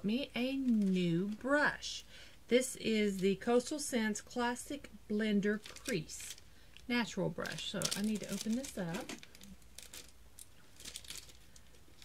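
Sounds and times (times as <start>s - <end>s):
packaging rustling and crinkling: 5.6s - 12.0s.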